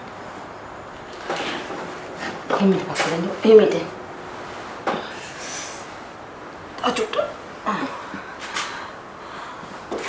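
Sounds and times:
person breathing hard and gasping: 7.7 - 9.8.

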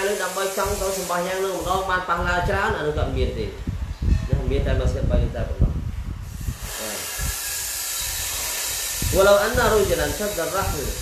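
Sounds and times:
steady hiss: 0.0 - 3.5, 6.1 - 11.0.

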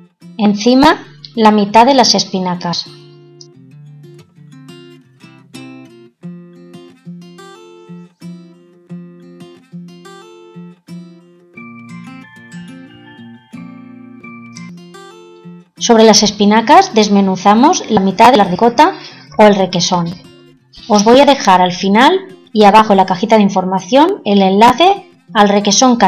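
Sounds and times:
plucked acoustic guitar melody: 1.0 - 2.2, 2.9 - 21.6, 22.2 - 23.3, 24.1 - 26.0.

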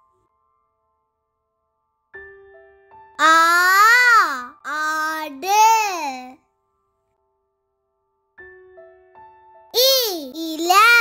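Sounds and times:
child reciting in sing-song syllables: 3.2 - 6.4, 9.8 - 11.0.

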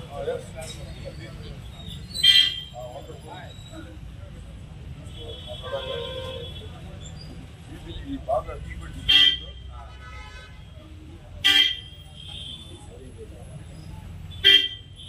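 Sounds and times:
low traffic rumble: 0.0 - 15.0
voices: 0.0 - 15.0
vehicle horns honking: 2.2 - 2.8, 5.0 - 6.8, 9.0 - 12.9, 14.3 - 15.0.

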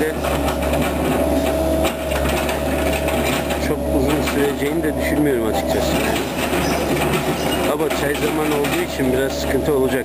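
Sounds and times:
machine knocks: 0.0 - 9.8
excavator diesel engine drone: 0.0 - 10.0.

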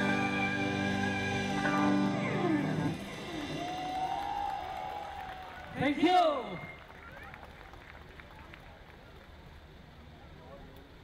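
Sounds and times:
rock band holding final chord: 0.0 - 4.2.

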